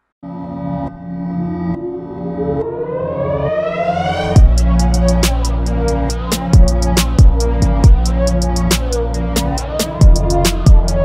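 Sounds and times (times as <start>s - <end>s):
held low synth notes: 0.2s - 11.0s
rising synth sweep: 0.2s - 11.0s.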